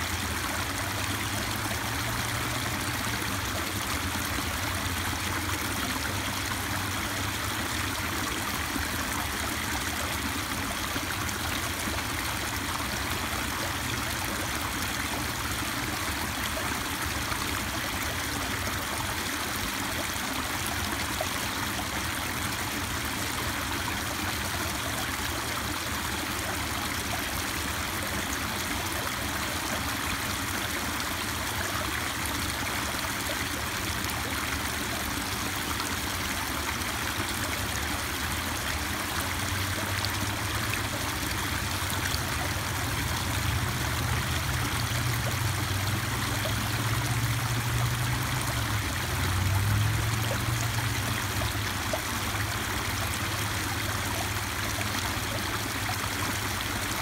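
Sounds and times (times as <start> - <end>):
waterfall pouring into pool: 0.0 - 57.0.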